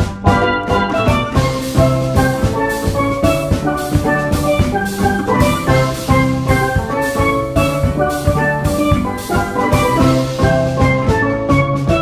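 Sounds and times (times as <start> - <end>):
bass: 0.0 - 12.0
steelpan melody: 0.3 - 12.0
drum beat: 1.1 - 11.1.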